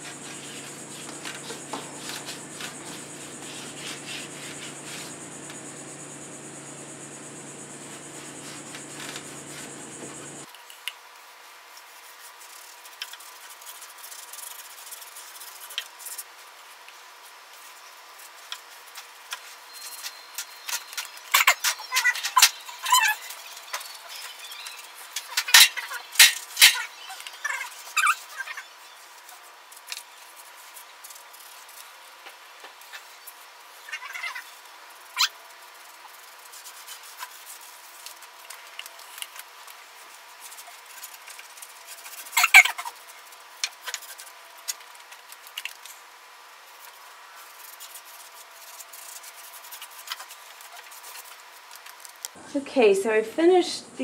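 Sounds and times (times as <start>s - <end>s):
bristles squeaking on wood: 0.0s - 10.5s, 41.8s - 43.0s
faint steady hum: 0.0s - 10.5s
paintbrush scrubbing on wood: 0.0s - 10.5s.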